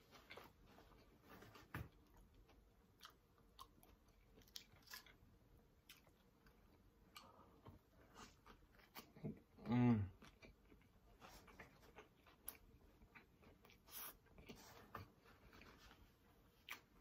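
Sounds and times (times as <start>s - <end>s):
person chewing: 2.0s - 17.0s.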